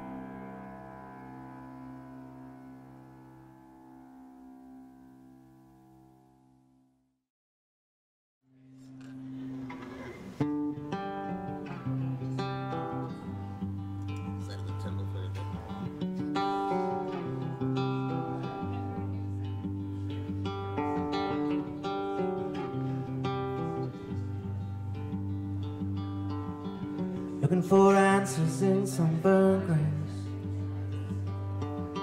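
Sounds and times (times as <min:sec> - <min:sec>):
acoustic guitar picking: 0:08.8 - 0:32.0.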